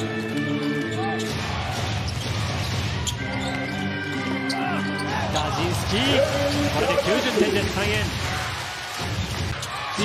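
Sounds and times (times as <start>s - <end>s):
sneaker squeaks: 0.0s - 1.4s, 2.0s - 5.6s
arena music: 0.0s - 10.0s.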